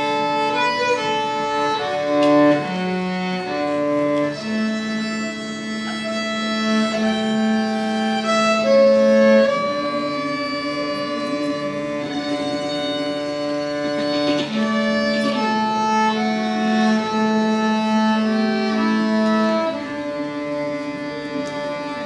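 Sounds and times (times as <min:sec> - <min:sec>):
cello and violin duet: 0:00.0 - 0:22.0.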